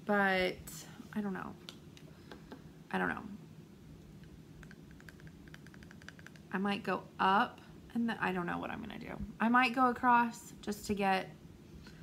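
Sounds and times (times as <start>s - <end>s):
pen tapping against teeth: 4.6s - 6.4s.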